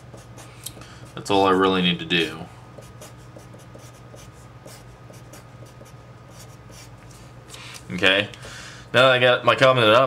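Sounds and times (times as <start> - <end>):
marker writing on paper: 0.0 - 1.2, 2.8 - 6.9.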